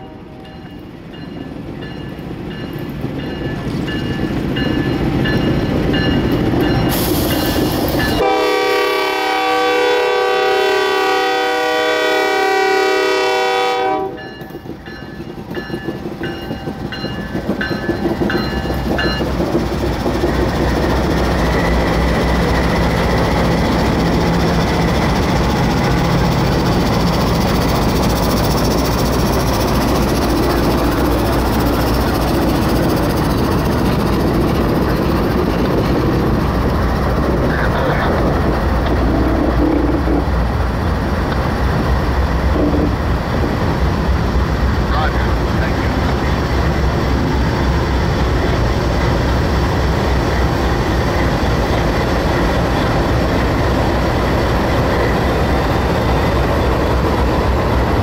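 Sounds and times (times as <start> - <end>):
freight train rumbling past: 0.0 - 58.0
locomotive horn blast: 8.2 - 14.2.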